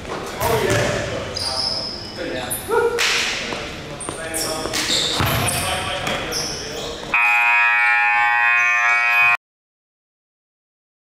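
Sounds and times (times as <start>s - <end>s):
court noise: 0.0s - 2.0s, 2.9s - 7.9s
basketball bouncing: 0.4s - 1.1s, 5.2s - 6.2s
scoreboard buzzer: 7.2s - 9.4s.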